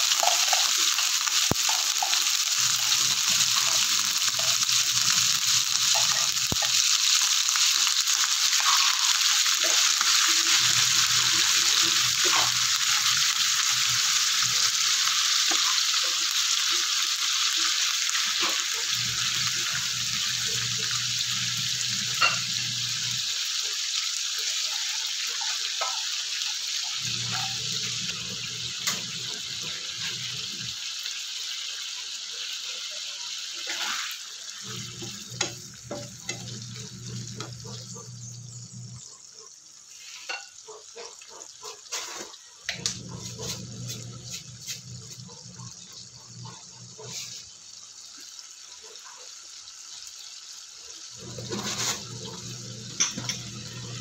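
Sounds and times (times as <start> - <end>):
food sizzling in a pan: 0.0 - 54.0.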